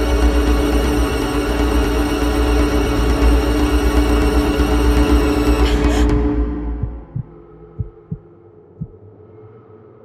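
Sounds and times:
heartbeat thumps: 6.8s - 9.0s.

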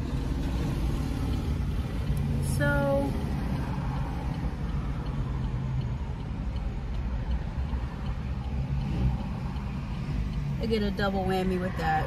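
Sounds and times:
car engine humming inside cabin: 0.0s - 12.0s.

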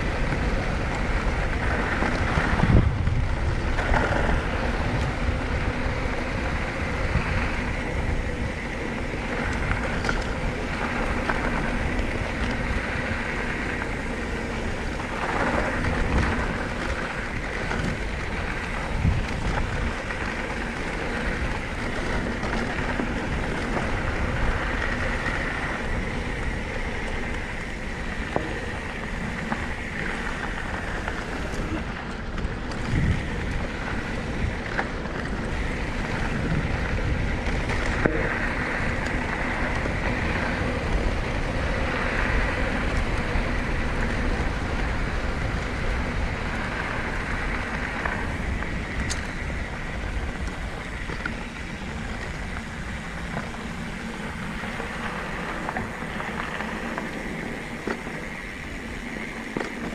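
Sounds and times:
wind buffeting microphone: 0.0s - 59.9s
bike knocks and rattles: 26.1s - 59.9s.

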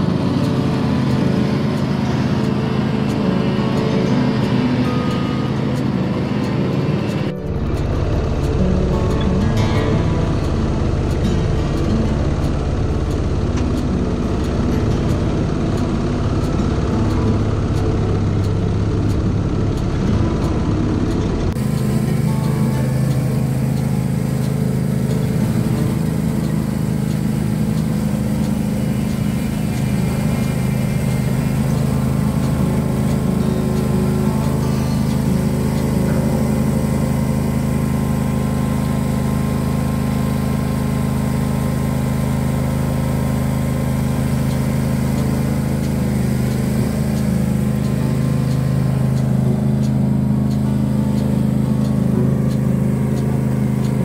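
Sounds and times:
garden tractor engine running: 0.0s - 54.0s.

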